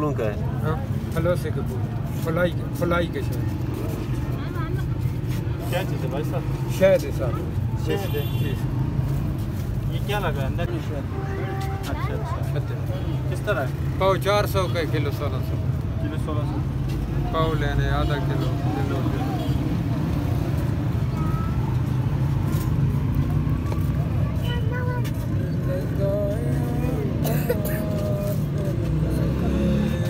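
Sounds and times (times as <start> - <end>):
vehicle engine rumbling: 0.0 - 30.0
people talking: 24.2 - 30.0.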